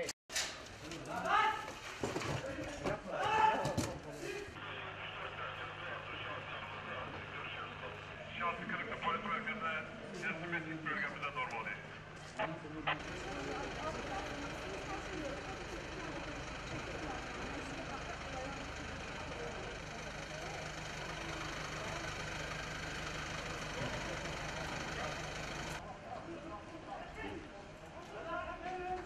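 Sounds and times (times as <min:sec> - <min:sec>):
faint voices: 0:02.4 - 0:29.0
vehicle engine idling: 0:12.9 - 0:25.9.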